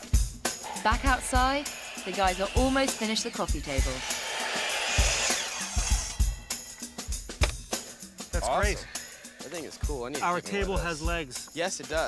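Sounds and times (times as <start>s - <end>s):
background music with drum beat: 0.0s - 12.0s
miter saw cutting wood: 0.6s - 6.8s.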